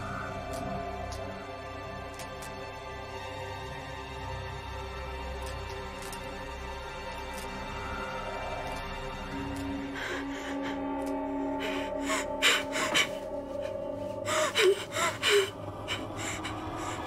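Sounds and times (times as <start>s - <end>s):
tense background music: 0.0s - 17.0s.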